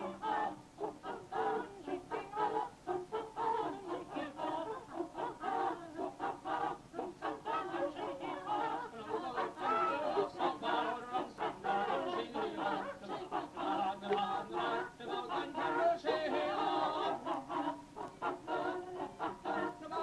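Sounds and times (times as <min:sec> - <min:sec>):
voices singing a rhythmic song: 0:00.0 - 0:20.0.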